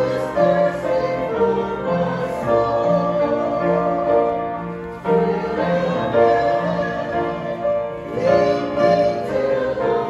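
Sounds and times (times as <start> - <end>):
group singing a hymn: 0.0 - 10.0
upright piano playing: 0.0 - 10.0.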